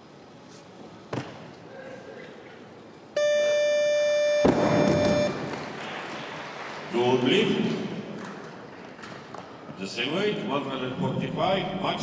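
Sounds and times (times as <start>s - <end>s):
electronic tone: 3.2s - 5.5s.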